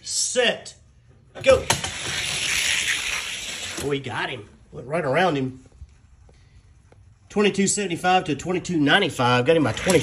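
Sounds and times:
toy cars rolling down track: 0:01.6 - 0:03.8.

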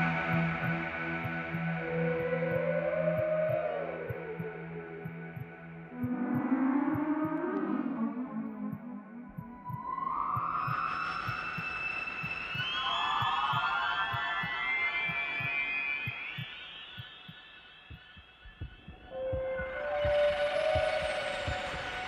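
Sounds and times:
sustained synthesizer tones: 0:00.0 - 0:22.0
low heartbeat pulse: 0:02.2 - 0:07.5, 0:08.7 - 0:22.0.

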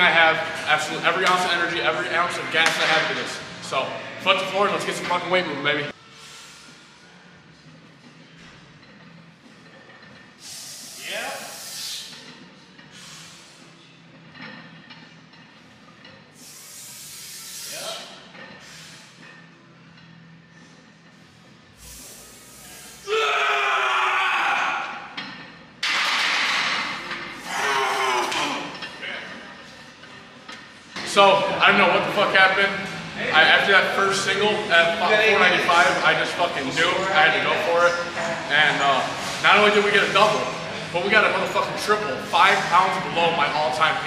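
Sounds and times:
loud shouting: 0:23.0 - 0:25.2, 0:27.4 - 0:28.7.

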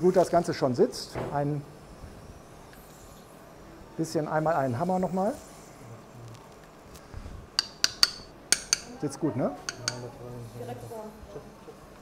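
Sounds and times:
metal mallet tapping: 0:07.6 - 0:09.0, 0:09.7 - 0:10.1.

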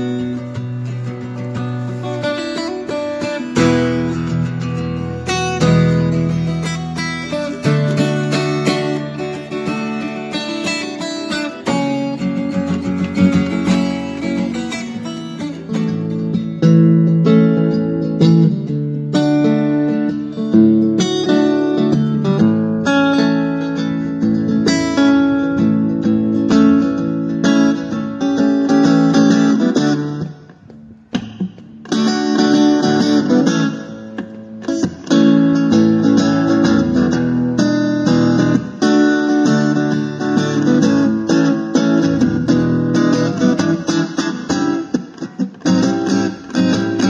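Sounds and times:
acoustic guitar playing: 0:00.0 - 0:47.0.

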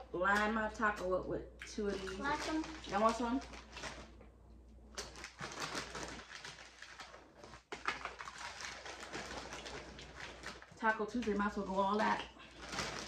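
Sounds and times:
plastic chip bag crinkling: 0:01.9 - 0:04.2, 0:04.9 - 0:13.0.

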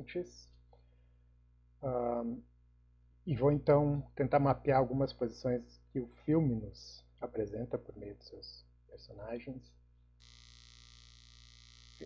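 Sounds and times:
faint steady hiss: 0:00.0 - 0:12.0
low electrical hum: 0:00.0 - 0:12.0.

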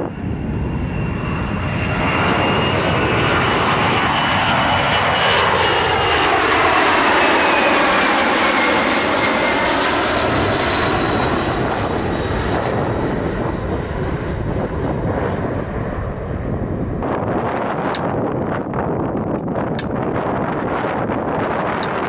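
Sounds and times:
jet aircraft flyover: 0:00.0 - 0:22.0.

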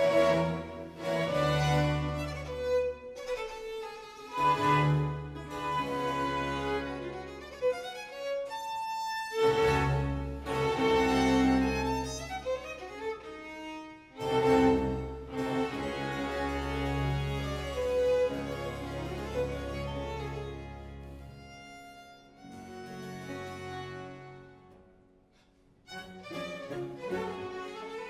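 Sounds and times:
cellos and double bass: 0:00.0 - 0:24.8, 0:25.8 - 0:28.0
lute: 0:00.0 - 0:28.0
violins: 0:00.0 - 0:28.0.

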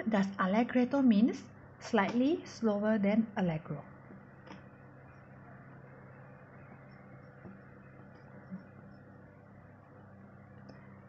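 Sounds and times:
steady low hum: 0:00.0 - 0:11.0
pencil writing on paper: 0:06.6 - 0:09.0.

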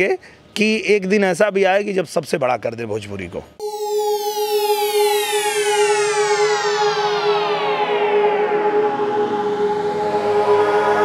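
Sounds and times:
steady held drone: 0:03.6 - 0:11.0
synth sweep gliding downward: 0:03.6 - 0:11.0.

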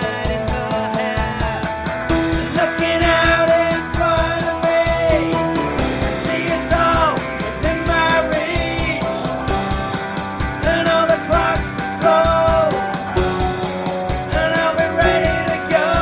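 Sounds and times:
steady drum beat: 0:00.0 - 0:16.0.

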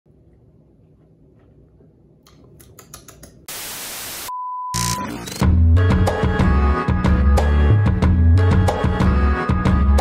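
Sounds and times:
white-noise static: 0:03.4 - 0:05.0.

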